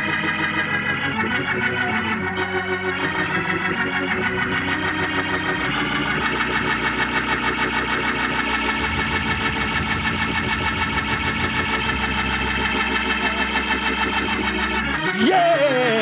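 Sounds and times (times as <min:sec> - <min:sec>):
deep bass line: 0:00.0 - 0:16.0
organ sustained chords: 0:00.0 - 0:16.0.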